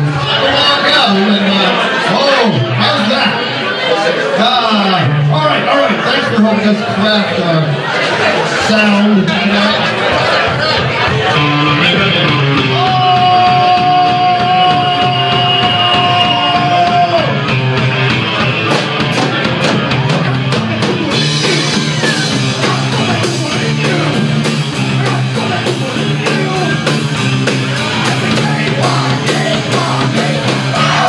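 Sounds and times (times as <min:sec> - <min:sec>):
drum kit beat: 0:10.8 - 0:31.0
electric guitars: 0:10.8 - 0:31.0
person singing: 0:28.0 - 0:31.0.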